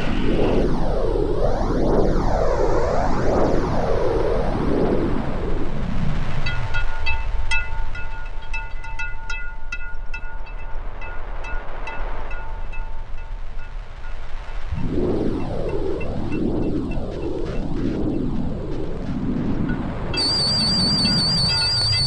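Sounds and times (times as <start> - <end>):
low rumble: 10.7 - 22.0
noisy synth swell sweeping pitch: 20.2 - 22.0
short pitched electronic pings: 20.2 - 22.0.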